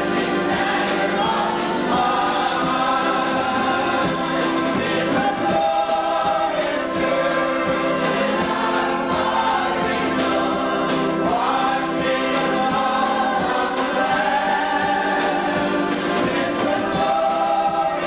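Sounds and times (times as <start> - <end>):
choir singing in parts: 0.0 - 18.0.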